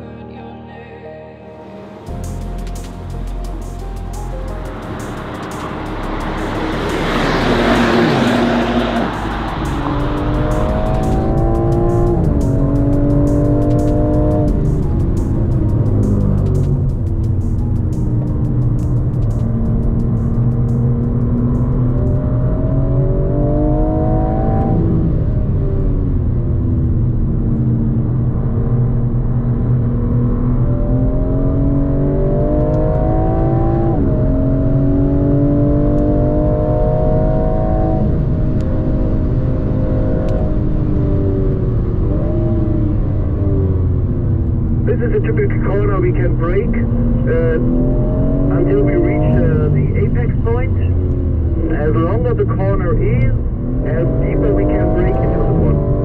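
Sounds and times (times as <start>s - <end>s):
low road rumble: 0.0s - 56.0s
car engine accelerating: 1.7s - 56.0s.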